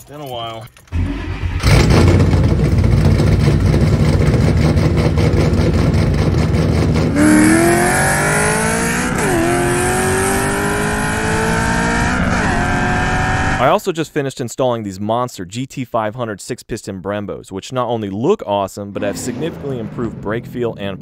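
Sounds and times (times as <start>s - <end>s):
car engine accelerating hard: 1.0s - 13.7s
car engine idling loudly: 1.6s - 8.0s.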